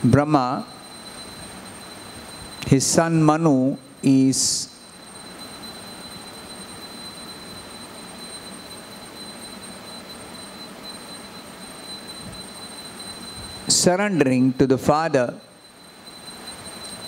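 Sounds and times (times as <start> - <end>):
thin high-pitched whine: 0.0 - 17.0.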